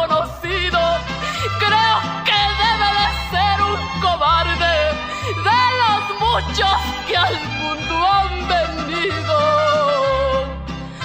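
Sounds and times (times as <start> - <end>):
woman singing with vibrato: 0.0 - 10.6.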